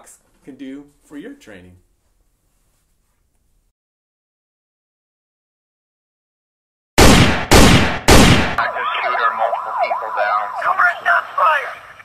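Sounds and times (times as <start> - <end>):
gunshots ringing: 7.0 - 8.6
emergency sirens wailing: 8.6 - 12.0.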